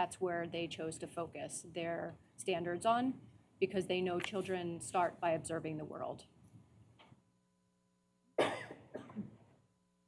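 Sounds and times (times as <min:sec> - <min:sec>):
person coughing: 0:08.4 - 0:09.4.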